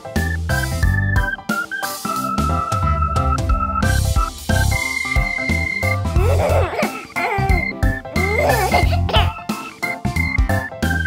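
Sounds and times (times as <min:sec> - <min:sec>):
children's keyboard music: 0:00.0 - 0:11.0.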